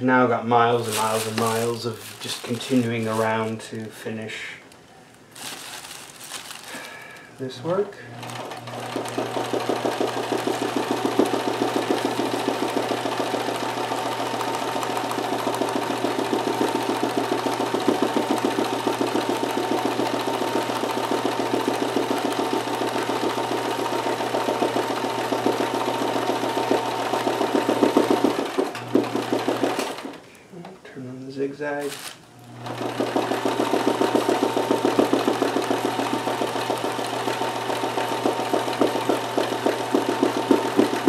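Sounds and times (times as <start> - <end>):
sewing machine stitching: 8.1 - 30.2, 32.5 - 41.0.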